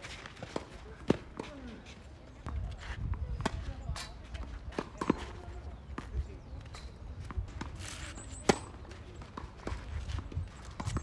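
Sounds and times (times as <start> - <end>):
wind rumble on microphone: 2.4 - 4.7, 9.8 - 11.0.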